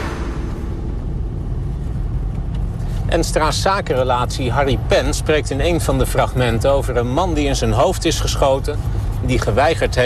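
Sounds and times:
low rumble of road traffic: 0.0 - 10.0.

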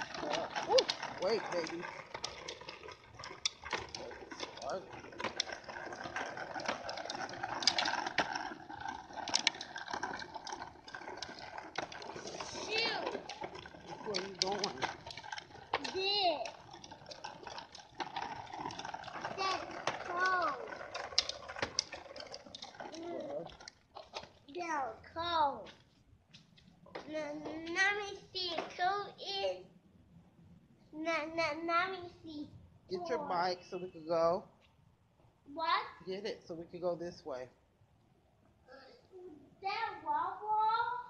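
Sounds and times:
plastic wheels clattering on concrete: 0.0 - 25.9, 26.5 - 29.6, 32.9 - 34.5.

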